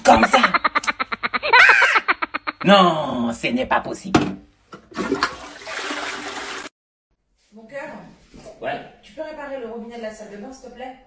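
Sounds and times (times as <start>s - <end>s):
toilet flushing: 4.8s - 6.7s.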